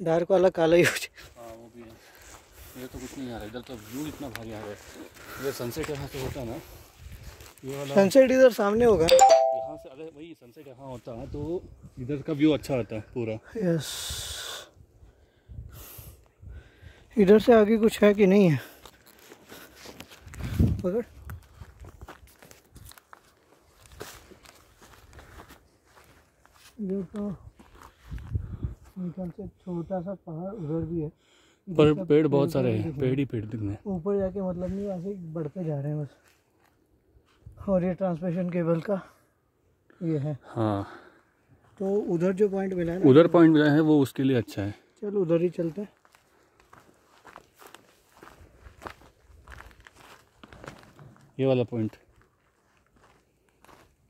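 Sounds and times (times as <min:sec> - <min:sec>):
footsteps on dirt trail: 0:01.4 - 0:08.2, 0:17.9 - 0:29.0, 0:45.5 - 0:54.0.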